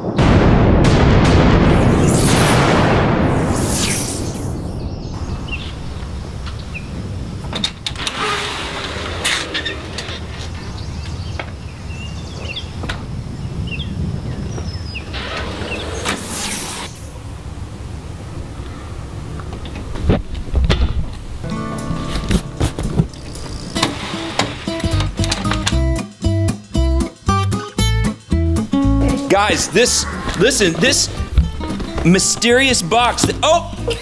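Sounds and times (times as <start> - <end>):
swooshing swells: 1.6 - 6.2, 29.1 - 31.6
storm door clicks and knocks: 7.4 - 8.2.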